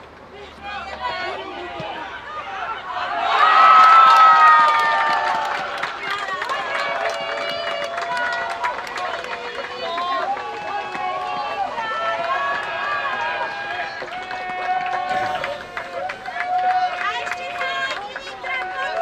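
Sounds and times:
young voices shouting in celebration: 0.6s - 19.0s.

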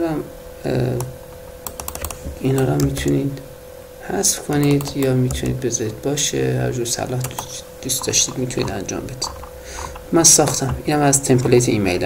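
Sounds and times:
keyboard keystrokes: 1.0s - 3.2s, 4.5s - 5.6s, 7.1s - 11.6s.

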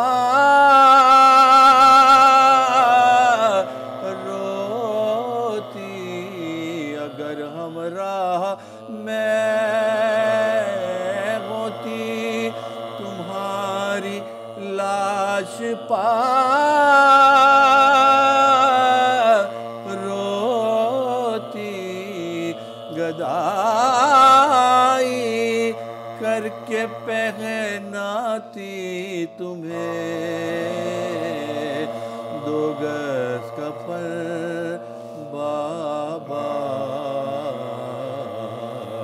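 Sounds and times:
men chanting a lament: 0.0s - 39.0s.

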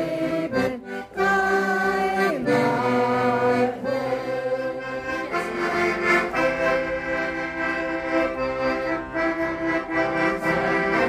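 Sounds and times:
choir singing: 0.0s - 11.0s
piano accordion: 0.0s - 11.0s.

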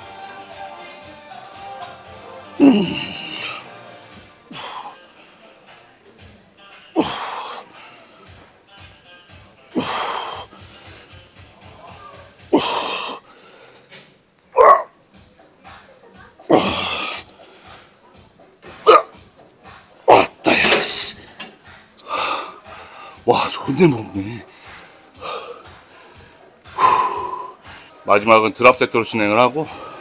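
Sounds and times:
gym music with steady beat: 0.0s - 30.0s
man grunting and exhaling: 2.6s - 3.6s.

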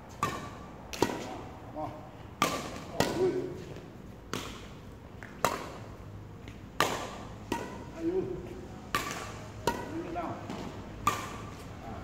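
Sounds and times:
racket striking shuttlecock: 0.1s - 1.4s, 2.4s - 3.6s, 4.3s - 8.1s, 8.8s - 11.7s.

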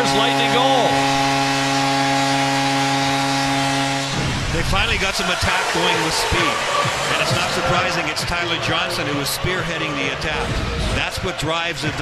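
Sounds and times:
goal horn: 0.0s - 7.9s
crowd cheering: 0.0s - 12.0s.

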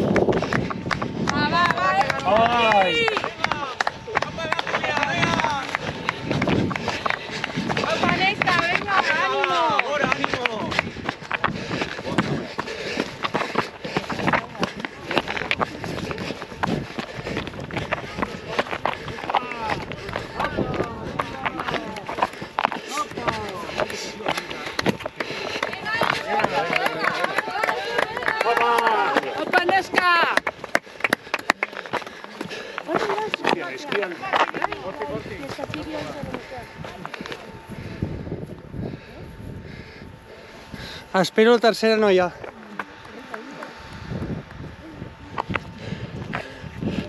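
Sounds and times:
footsteps running on rocky trail: 0.0s - 40.0s, 40.6s - 47.0s
people calling and talking: 0.0s - 47.0s.

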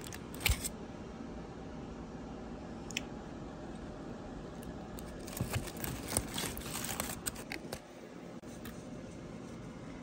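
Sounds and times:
low background hum: 0.0s - 10.0s
aluminium foil crinkling: 5.0s - 7.8s.

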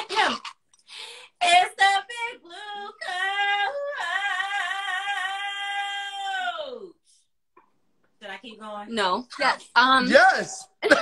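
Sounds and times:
woman singing unaccompanied: 1.4s - 6.8s.

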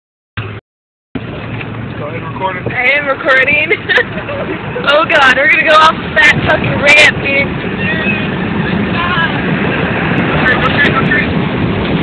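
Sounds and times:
truck engine and road noise: 0.4s - 0.6s, 1.2s - 12.0s
wind buffeting microphone: 1.2s - 12.0s.

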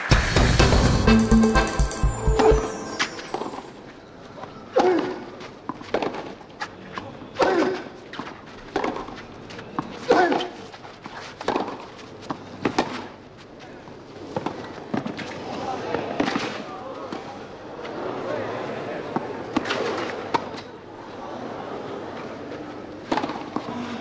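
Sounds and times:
racquets striking tennis ball: 11.4s - 13.1s
spectators chatting: 15.4s - 24.0s.

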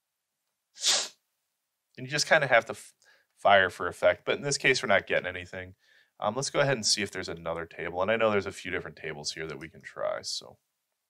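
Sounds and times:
person breath burst: 0.8s - 1.2s.

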